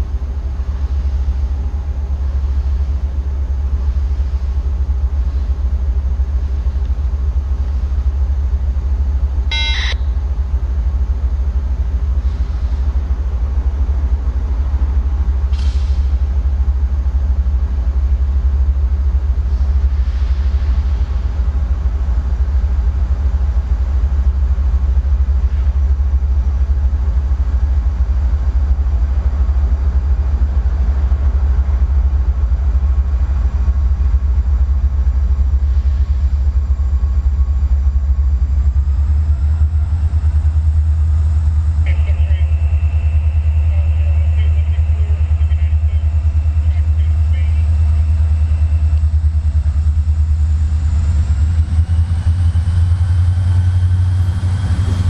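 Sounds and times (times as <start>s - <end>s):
diesel locomotive engine rumbling: 0.0s - 55.0s
high steady tone: 9.5s - 10.2s, 40.7s - 50.8s.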